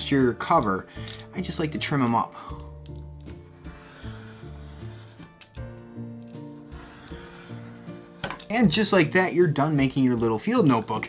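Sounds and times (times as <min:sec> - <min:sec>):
background music: 0:00.0 - 0:11.0
craft knife slicing paper: 0:03.2 - 0:05.6, 0:06.2 - 0:08.6.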